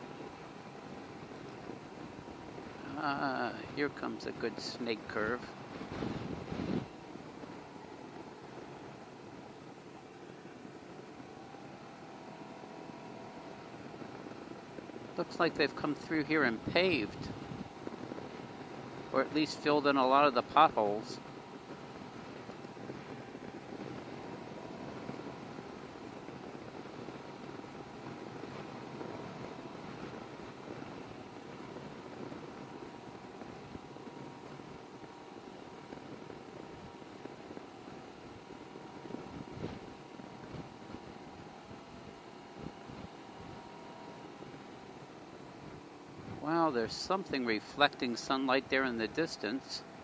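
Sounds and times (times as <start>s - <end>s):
road and wind noise: 0.0s - 50.0s
motorcycle engine running: 4.6s - 47.0s.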